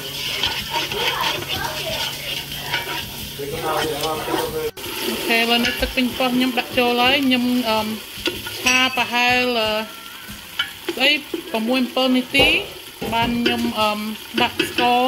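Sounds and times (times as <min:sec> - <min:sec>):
sauce sizzling in a pot: 0:00.0 - 0:15.0
wooden spatula stirring: 0:00.0 - 0:15.0.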